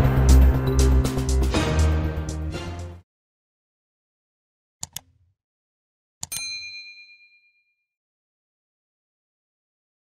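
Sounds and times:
mouse clicks: 4.8s - 5.2s
notification bell ding: 6.2s - 7.9s.

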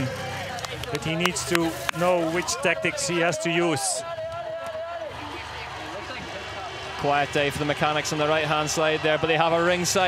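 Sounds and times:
faint voices: 0.0s - 10.0s
outdoor background noise: 0.0s - 10.0s.

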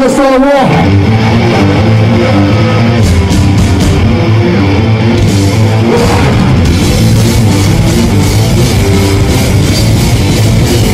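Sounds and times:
distorted guitar and bass riff: 0.0s - 10.9s.

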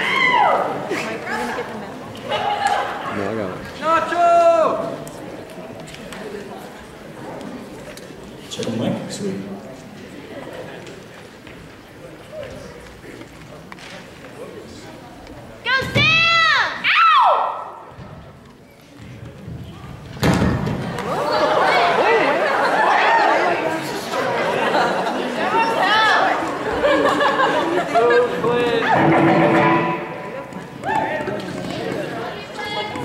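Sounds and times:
audience chatter: 0.0s - 33.0s.

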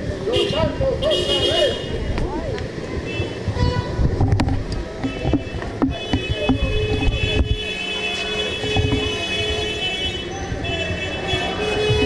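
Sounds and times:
crowd walking: 0.0s - 12.0s
low traffic rumble: 0.0s - 12.0s
footsteps and clicks: 4.1s - 9.3s.

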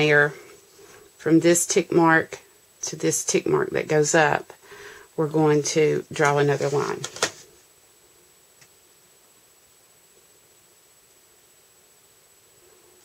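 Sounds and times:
faint steady hiss: 0.0s - 13.0s.

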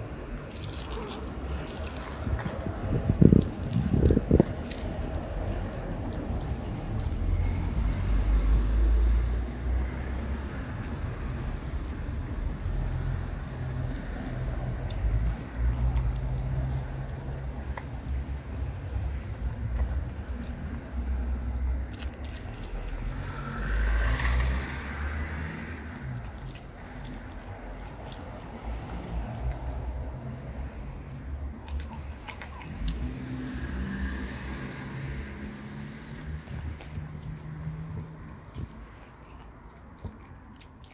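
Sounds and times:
car passing: 0.0s - 39.4s
street traffic rumble: 0.0s - 40.9s
cat chewing wet food: 31.6s - 33.0s, 36.2s - 40.9s.

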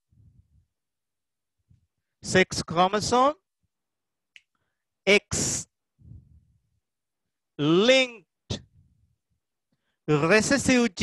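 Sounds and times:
man speaking: 2.2s - 3.4s, 5.1s - 5.8s, 7.6s - 8.7s, 10.1s - 11.0s.

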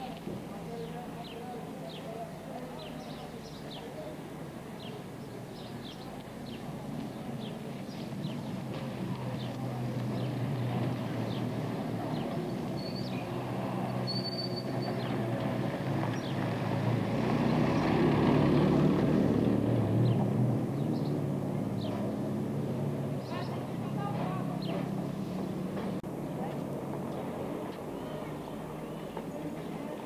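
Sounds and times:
birds chirping: 0.7s - 30.0s
car driving by: 8.2s - 26.1s.

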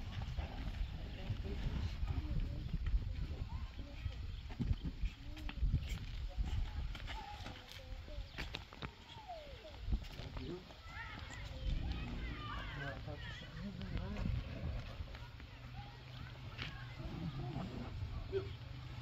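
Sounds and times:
indistinct voices: 0.2s - 19.0s.

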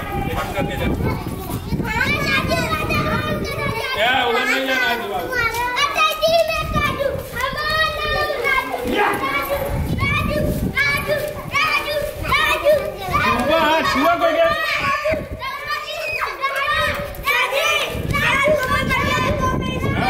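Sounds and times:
children chanting a call: 2.0s - 20.0s.

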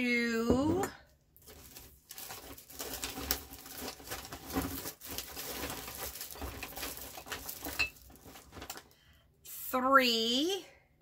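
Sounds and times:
bag rustling and crinkling: 1.4s - 9.0s.

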